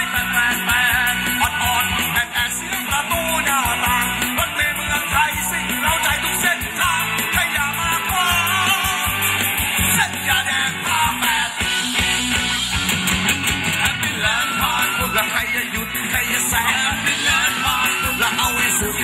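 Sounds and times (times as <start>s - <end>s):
person singing: 0.0s - 12.0s, 13.7s - 19.0s
live band dance music: 0.0s - 19.0s
steady drum beat: 0.0s - 19.0s.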